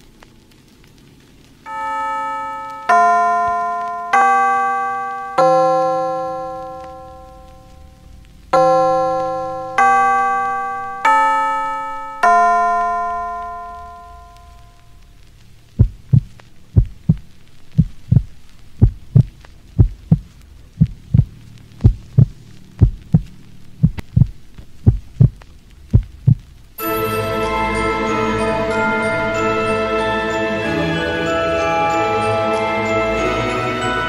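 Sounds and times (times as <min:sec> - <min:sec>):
ringing bell-like notes: 0:01.7 - 0:15.0, 0:26.8 - 0:34.0
heartbeat-like low double thumps: 0:15.8 - 0:26.5.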